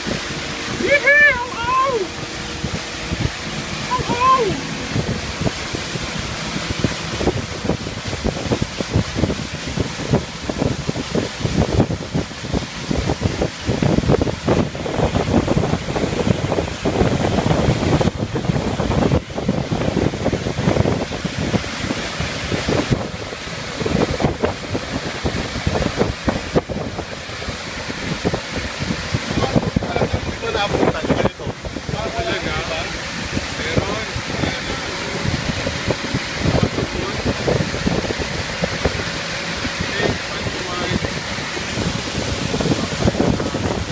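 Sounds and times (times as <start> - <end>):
water rushing along hull: 0.0 - 43.9
wind buffeting microphone: 0.0 - 43.9.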